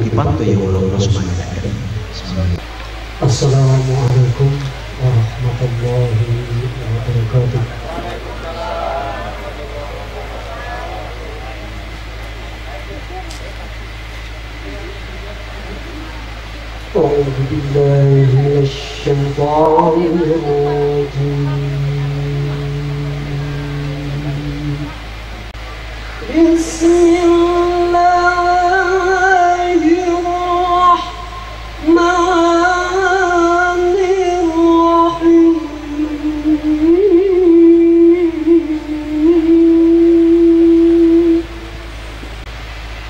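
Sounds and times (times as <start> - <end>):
man chanting a long note: 0.0 - 42.5
steady low hum: 0.0 - 43.0.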